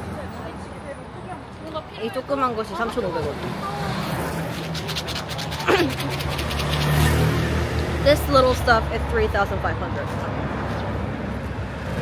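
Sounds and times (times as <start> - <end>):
vehicle engine rumbling: 3.2 - 12.0.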